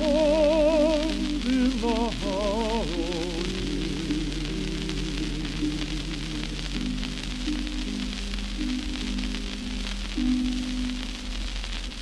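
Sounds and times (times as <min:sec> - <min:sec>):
man singing held note: 0:00.0 - 0:06.7
record surface hiss and crackle: 0:00.0 - 0:12.0.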